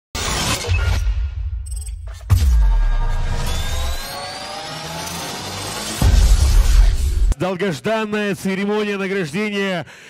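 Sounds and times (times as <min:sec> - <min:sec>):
crashing hit with bass boom: 0:06.0 - 0:07.3.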